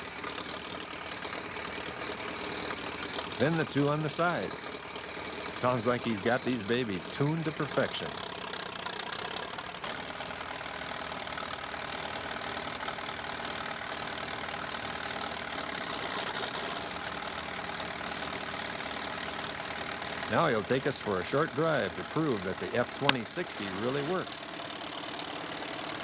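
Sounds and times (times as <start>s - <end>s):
tractor engines idling: 0.0s - 26.0s.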